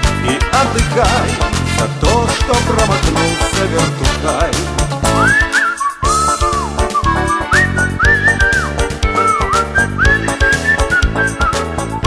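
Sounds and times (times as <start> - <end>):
band with acoustic guitar and bass: 0.0 - 12.0
person whistling melody: 5.1 - 12.0.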